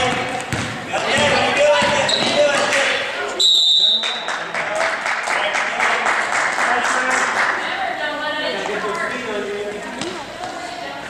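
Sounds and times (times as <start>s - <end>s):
basketball bouncing on gym floor: 0.0s - 2.7s
spectators chattering: 0.0s - 11.0s
referee's whistle blast: 3.4s - 4.2s.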